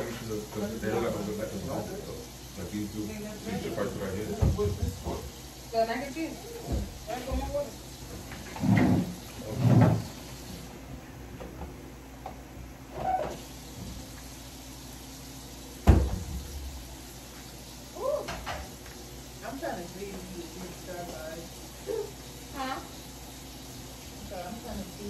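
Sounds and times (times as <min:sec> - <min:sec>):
voices: 0:00.0 - 0:07.8, 0:19.4 - 0:23.0, 0:24.2 - 0:25.0
cabinet door banging shut: 0:04.4 - 0:05.0, 0:15.8 - 0:16.5.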